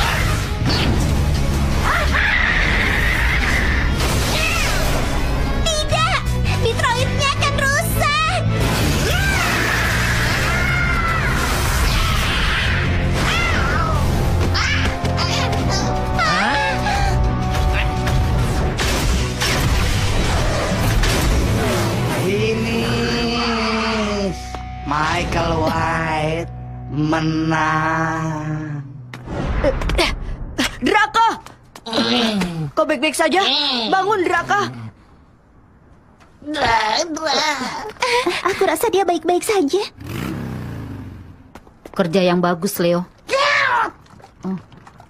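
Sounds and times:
dramatic cartoon music: 0.0 - 30.6.

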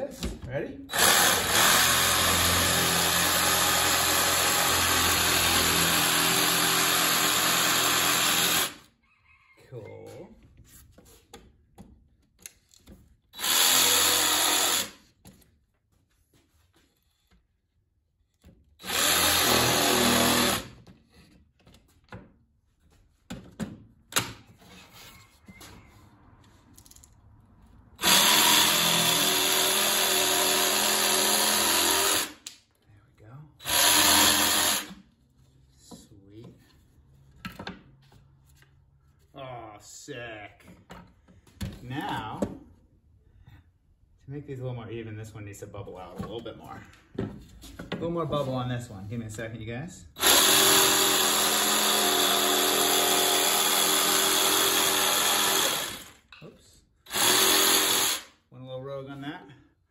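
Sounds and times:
jigsaw cutting wood: 0.9 - 8.8, 13.4 - 15.0, 18.8 - 20.8, 28.0 - 32.4, 33.6 - 35.0, 50.2 - 56.2, 57.1 - 58.3.

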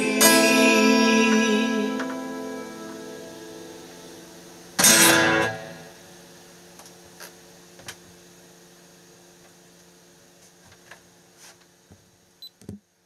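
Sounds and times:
acoustic guitar chord ringing: 0.0 - 5.9.

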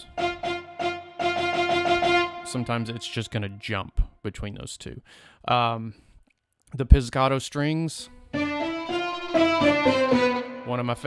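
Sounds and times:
bowed violin notes with vibrato: 0.0 - 3.8, 8.3 - 11.0.

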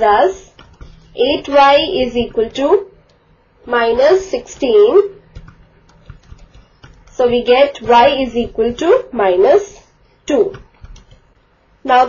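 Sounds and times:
stylus clicks and taps on screen: 0.4 - 9.1, 10.3 - 11.4.

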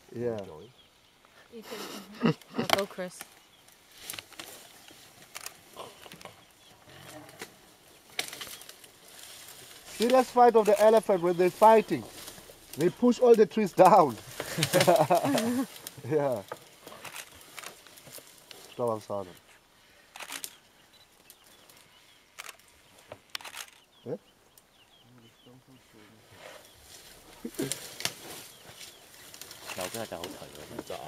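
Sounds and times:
branches cracking and snapping: 2.2 - 19.2, 20.1 - 20.6, 21.2 - 23.9, 26.6 - 31.0
person speaking: 9.9 - 12.2, 12.8 - 16.5.

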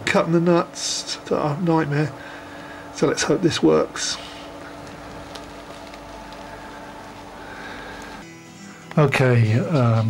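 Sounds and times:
droning hum: 0.0 - 10.0
quieter hum: 0.0 - 10.0.

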